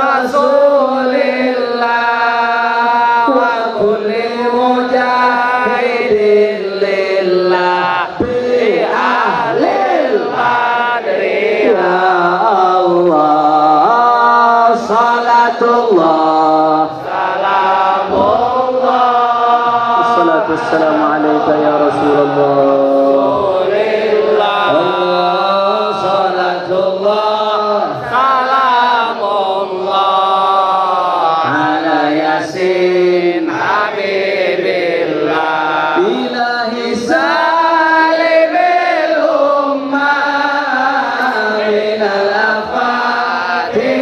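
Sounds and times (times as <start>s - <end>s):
congregation chanting: 0.0s - 44.0s.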